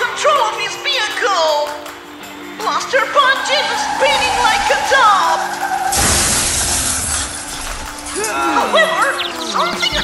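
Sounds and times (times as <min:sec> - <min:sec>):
background music: 0:00.0 - 0:10.0
cartoon crash: 0:03.2 - 0:08.2.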